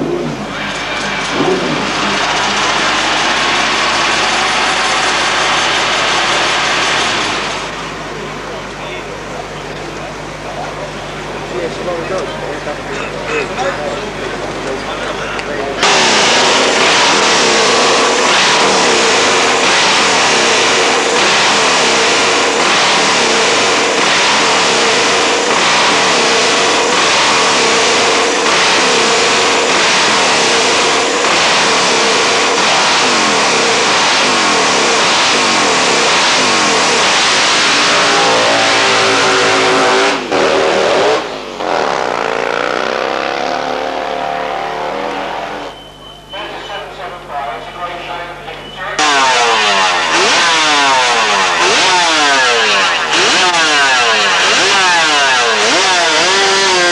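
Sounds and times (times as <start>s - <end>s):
motorcycle engine revving: 0.0s - 8.6s, 9.8s - 45.8s, 49.0s - 56.9s.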